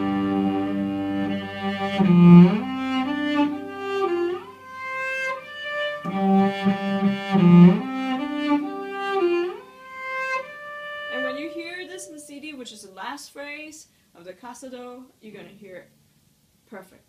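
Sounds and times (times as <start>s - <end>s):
bowed cello: 0.0s - 12.5s
woman talking: 11.1s - 15.9s, 16.7s - 17.0s.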